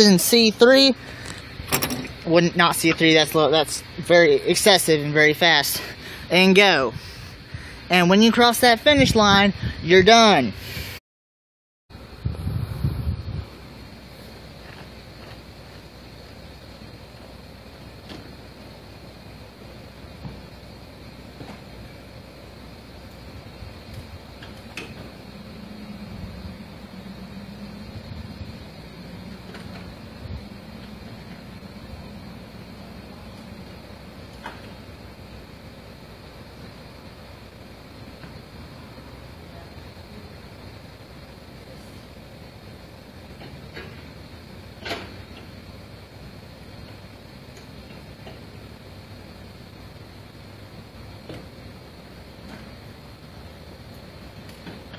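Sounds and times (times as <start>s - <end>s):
distant tractor engine: 0.0s - 9.2s, 13.5s - 54.9s.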